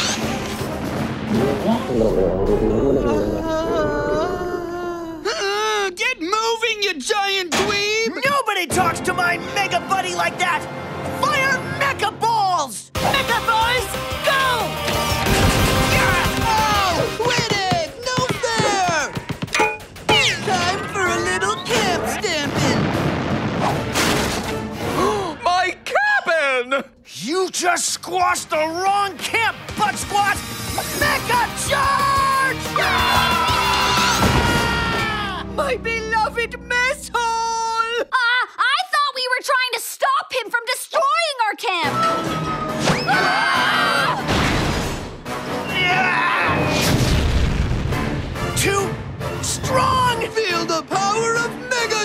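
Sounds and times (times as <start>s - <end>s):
background music: 0.0s - 38.4s, 40.8s - 52.0s
character crying out: 2.9s - 5.4s, 31.9s - 35.5s, 43.0s - 44.2s
cartoon crash and crumbling debris: 21.8s - 24.5s, 46.7s - 47.9s
cartoon yell: 31.0s - 35.5s
character screaming: 31.7s - 35.5s, 43.0s - 44.3s, 45.6s - 46.8s.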